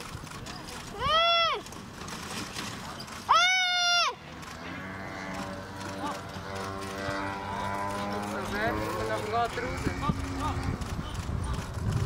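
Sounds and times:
short shouted calls: 3.3 - 4.2.

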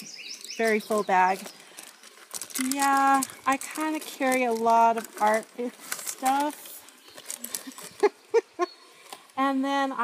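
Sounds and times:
pens rustling in pencil case: 0.5 - 8.2
woman laughing: 7.6 - 8.8.

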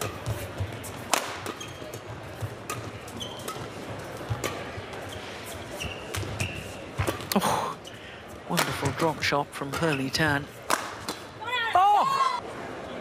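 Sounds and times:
shoes squeaking on court: 0.0 - 8.0, 9.6 - 10.6
indoor arena hum: 0.0 - 13.0.

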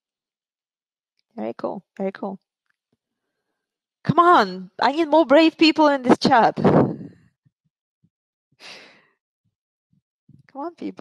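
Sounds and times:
short breath: 8.6 - 9.2.

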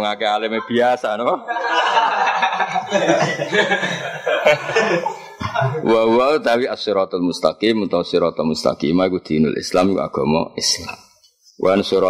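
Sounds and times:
people talking: 0.0 - 11.0, 11.6 - 12.0
people laughing: 1.4 - 6.1.

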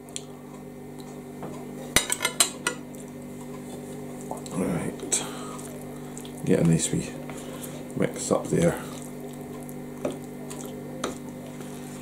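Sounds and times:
freezer buzzing: 1.3 - 12.0.

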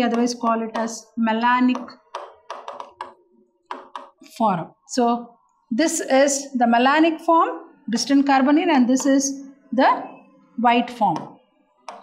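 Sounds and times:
stylus tapping on screen: 0.0 - 4.3, 11.1 - 12.0.

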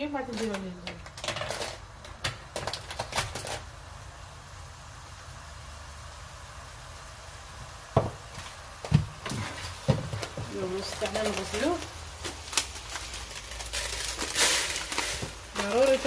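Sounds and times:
rice frying hiss: 0.0 - 16.0
wooden spoon scraping rice in pan: 9.2 - 11.6.

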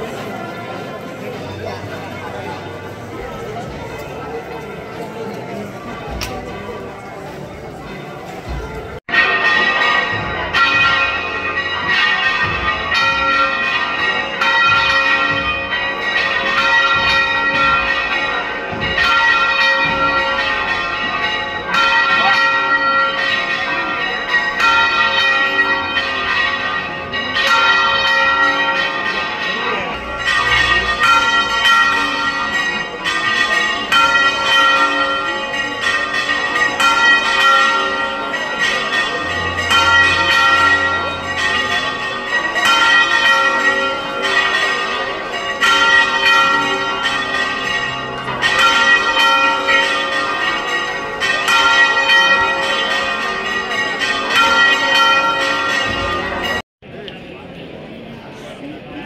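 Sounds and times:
church bells pealing: 0.0 - 56.6.

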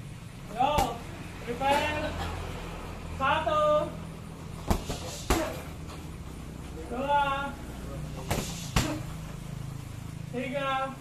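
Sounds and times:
steady low hum: 0.0 - 11.0
hits on punching bags: 4.6 - 5.7, 8.2 - 9.1.

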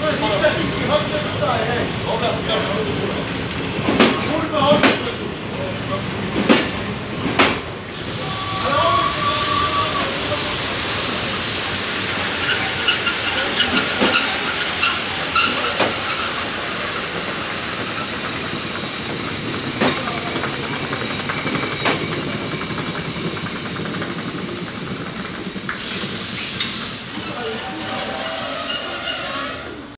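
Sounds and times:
train wheels knocking over rail joints: 3.6 - 5.2, 6.3 - 7.7, 12.5 - 25.9
hissing bursts: 7.9 - 13.0, 25.6 - 27.6
wheel squeals: 7.9 - 16.9, 25.8 - 29.9.

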